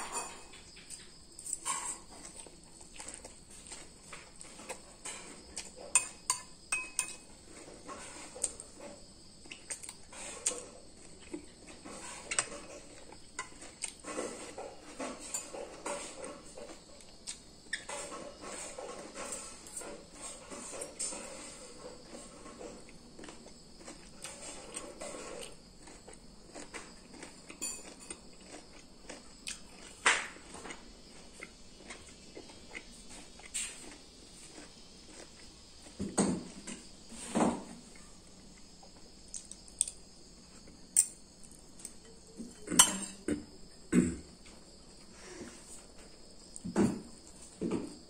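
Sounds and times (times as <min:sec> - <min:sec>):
close chewing: 0:00.8 - 0:06.2, 0:07.4 - 0:36.0
spoon and fork scraping bowl: 0:01.4 - 0:02.1, 0:04.5 - 0:08.8, 0:11.8 - 0:16.8.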